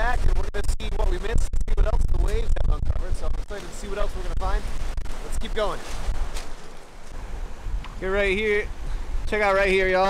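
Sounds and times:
wind buffeting microphone: 0:00.0 - 0:10.0
waves breaking on shore: 0:03.2 - 0:10.0.

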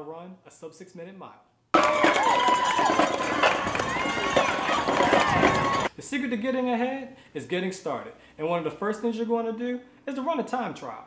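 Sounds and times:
runners' footsteps on road: 0:01.8 - 0:05.9
spectators shouting and cheering: 0:01.8 - 0:05.9.

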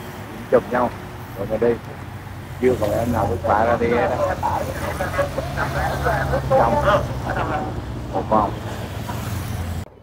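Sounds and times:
motorcycle engines humming: 0:00.0 - 0:10.0
spectators' voices: 0:02.7 - 0:08.7.

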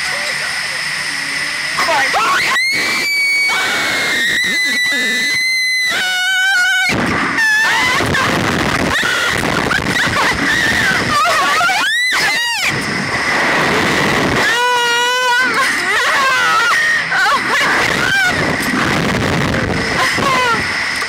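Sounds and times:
women screaming: 0:02.1 - 0:12.8, 0:14.4 - 0:18.6, 0:19.9 - 0:20.8
air rushing past microphone: 0:12.7 - 0:14.6.

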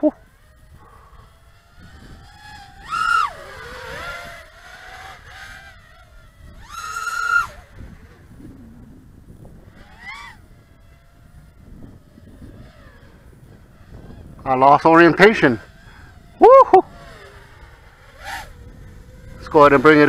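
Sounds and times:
quadcopter motors whining: 0:00.0 - 0:20.0.

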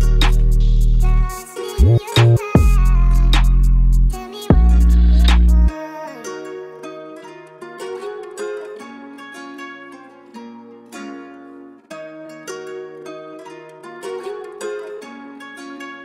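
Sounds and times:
drill beat: 0:00.0 - 0:05.7
plucked string melody: 0:00.0 - 0:16.0.

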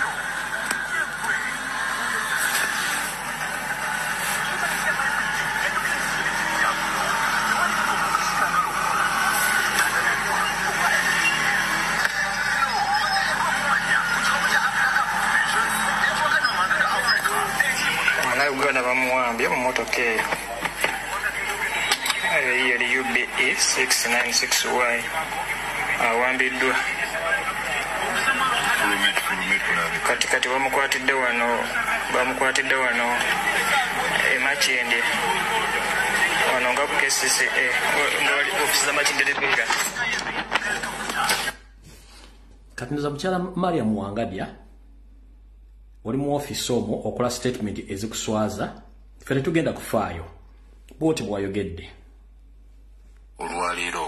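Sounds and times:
people's voices: 0:00.0 - 0:41.7, 0:53.4 - 0:54.0
road traffic: 0:00.0 - 0:42.4.

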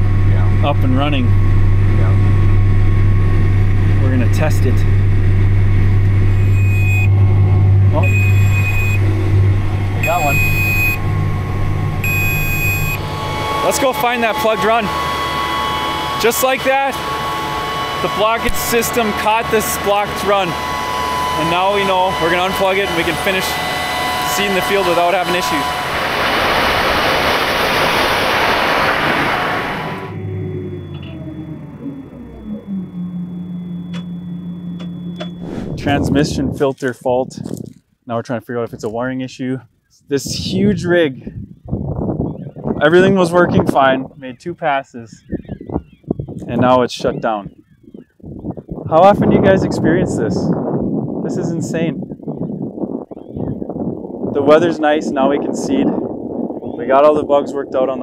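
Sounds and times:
tractor hum inside cab: 0:00.0 - 0:25.8, 0:29.8 - 0:35.9
wind buffeting microphone: 0:00.0 - 0:33.6, 0:35.0 - 0:37.8, 0:38.7 - 0:58.0
seeding rig rushing noise: 0:00.0 - 0:36.7
faint high steady tone: 0:06.3 - 0:14.3, 0:30.1 - 0:36.0.

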